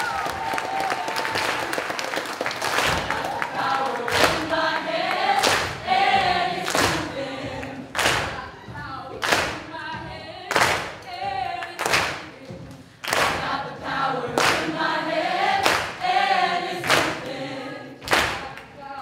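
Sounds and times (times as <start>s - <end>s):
people clapping in unison: 0.0s - 19.0s
group singing in chorus: 2.8s - 19.0s.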